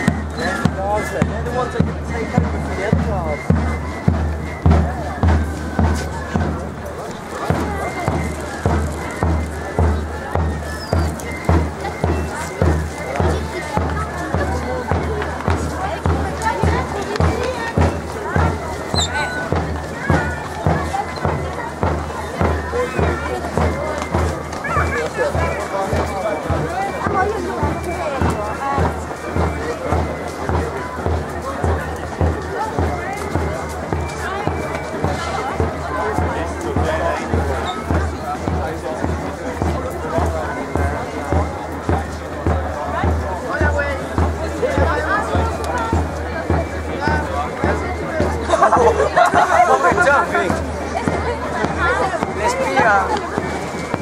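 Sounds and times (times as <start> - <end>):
bass drum beat: 0.0 - 54.0
crowd chatter: 0.0 - 54.0
military marching band playing: 0.0 - 54.0.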